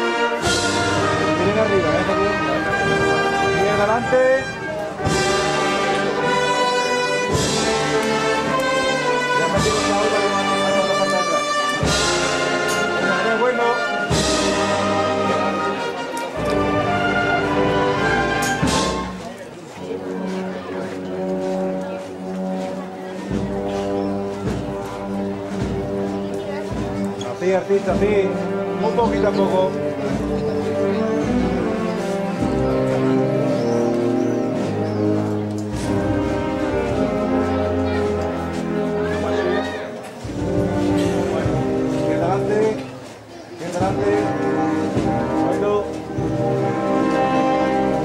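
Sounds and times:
brass band playing a march: 0.0s - 48.0s
drum strikes: 17.6s - 19.2s, 23.2s - 27.1s.

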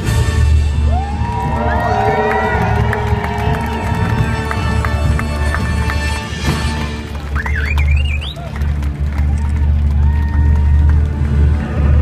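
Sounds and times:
audience cheering and whooping: 0.8s - 6.0s, 6.8s - 11.7s.

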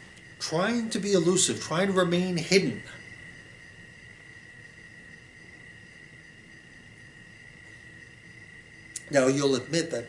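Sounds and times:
high-pitched whine: 0.0s - 10.0s
low background hiss: 0.0s - 10.0s.

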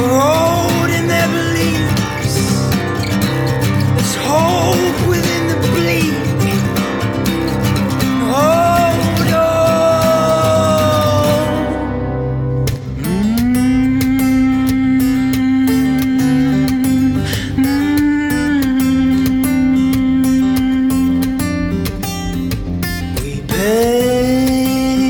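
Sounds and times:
strummed acoustic guitar: 0.0s - 25.0s.

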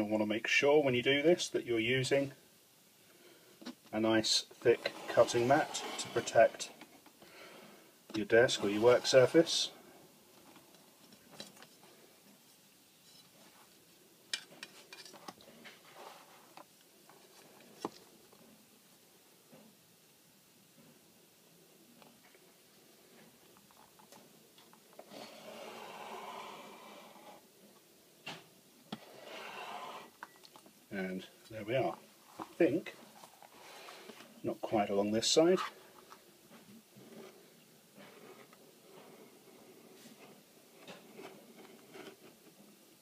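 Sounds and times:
knife scraping through leather: 4.7s - 6.6s, 29.0s - 30.2s.

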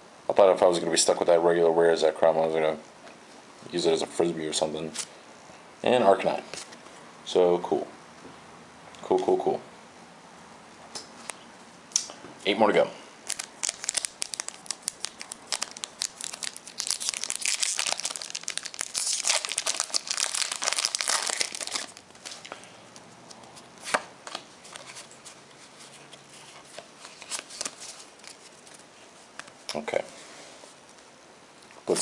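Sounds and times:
foil wrapper crinkling and tearing: 13.2s - 22.5s.

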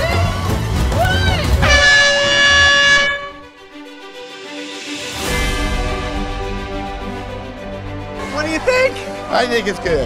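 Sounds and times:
background music: 0.0s - 10.0s
air horn blowing: 1.6s - 3.6s.

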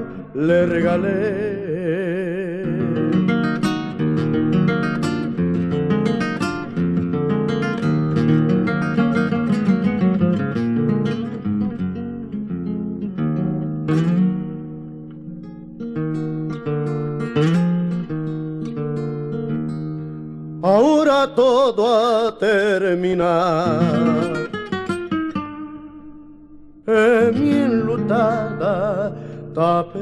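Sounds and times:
acoustic guitar playing: 0.0s - 30.0s.

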